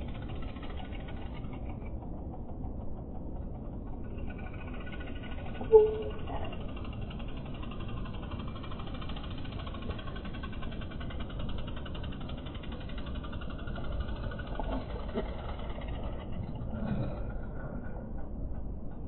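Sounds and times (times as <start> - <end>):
low steady rumble: 0.0 - 19.0.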